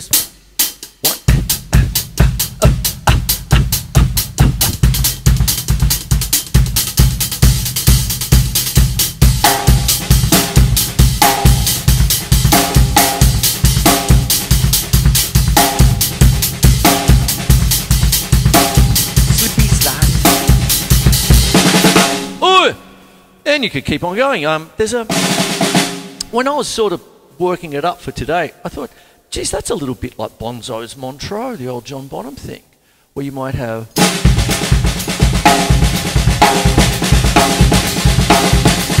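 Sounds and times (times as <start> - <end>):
drum kit playing funk groove: 0.0 - 22.4, 25.1 - 26.3, 34.0 - 39.0.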